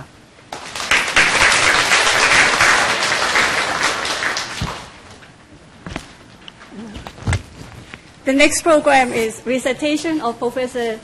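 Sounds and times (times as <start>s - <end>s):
audience applause: 0.5s - 5.0s.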